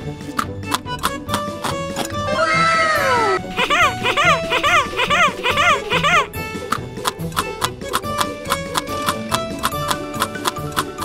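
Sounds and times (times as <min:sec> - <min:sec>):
upbeat music with plucked notes: 0:00.0 - 0:11.0
high cartoon voice: 0:02.3 - 0:06.3.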